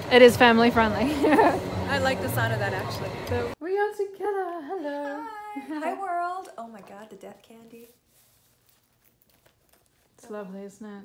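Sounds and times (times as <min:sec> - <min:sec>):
wallet rustling and clicking: 0:08.5 - 0:10.2.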